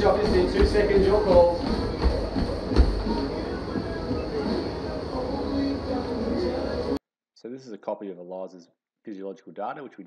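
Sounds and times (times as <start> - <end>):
runner's footfalls: 0.0 - 3.2
treadmill hum and rumble: 0.0 - 5.5.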